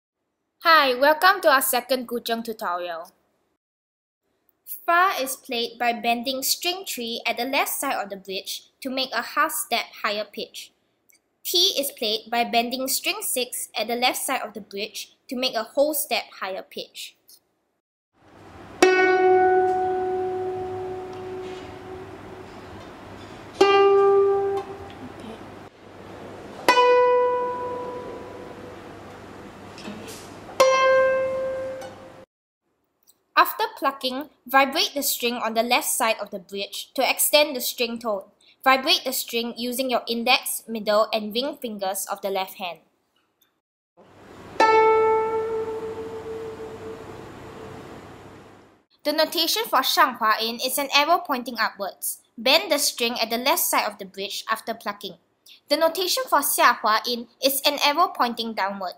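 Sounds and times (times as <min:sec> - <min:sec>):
guzheng notes plucked: 0:18.8 - 0:25.2, 0:26.6 - 0:29.0, 0:30.6 - 0:32.2, 0:44.4 - 0:47.6.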